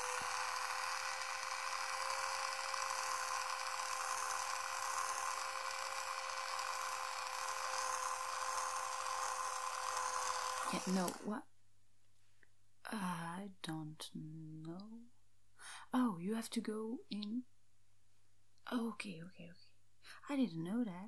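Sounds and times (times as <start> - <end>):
electric brush buzzing: 0.0 - 11.4.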